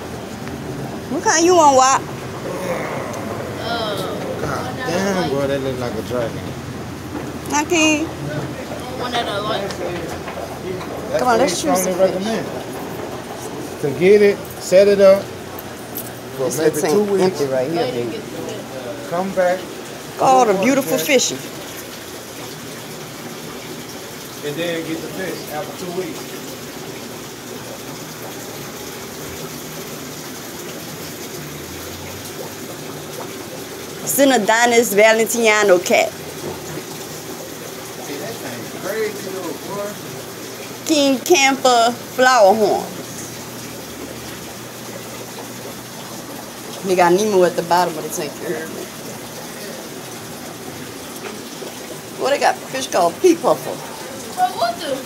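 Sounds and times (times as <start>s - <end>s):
aeration bubbling and splashing: 0.0s - 55.0s
water rushing through aquarium filters: 0.0s - 55.0s.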